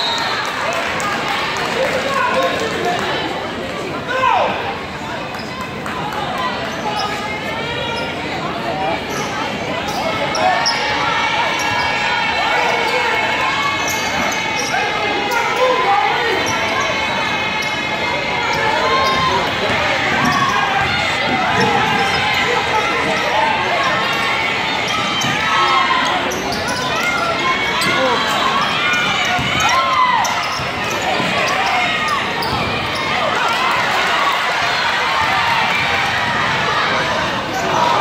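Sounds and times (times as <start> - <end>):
crowd chatter: 0.0 - 38.0.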